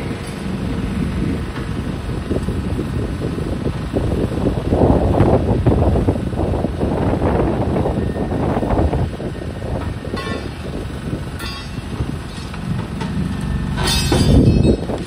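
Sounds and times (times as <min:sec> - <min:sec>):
excavator engine: 0:00.0 - 0:15.0.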